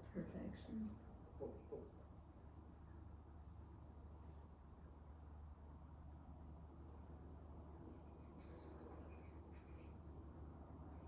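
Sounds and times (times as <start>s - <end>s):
low steady hum: 0.0s - 11.0s
faint high-pitched scratching: 1.4s - 3.3s, 7.0s - 11.0s.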